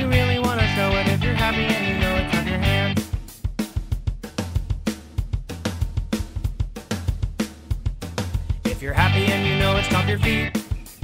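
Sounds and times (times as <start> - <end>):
bass line: 0.0 - 3.0, 8.6 - 10.6
drum kit beat: 0.0 - 11.0
instrumental music: 0.0 - 11.0.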